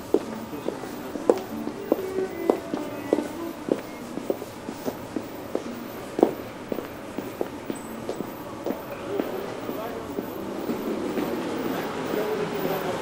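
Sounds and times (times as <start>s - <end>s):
footsteps on brick paving: 0.0s - 11.4s
murmur of voices: 0.0s - 13.0s.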